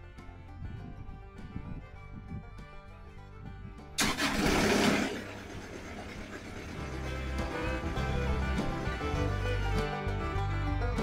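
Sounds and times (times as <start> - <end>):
bluegrass background music: 0.0 - 11.0
sawmill engine starting and running: 4.0 - 11.0.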